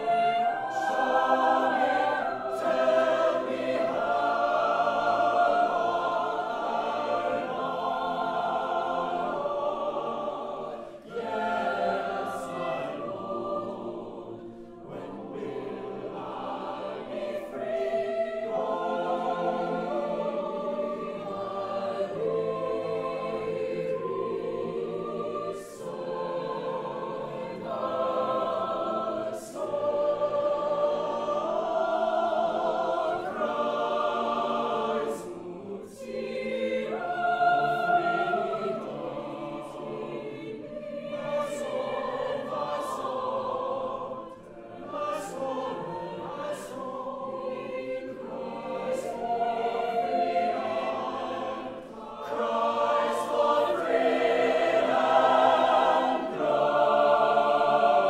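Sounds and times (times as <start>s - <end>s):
chamber choir singing: 0.0s - 58.0s.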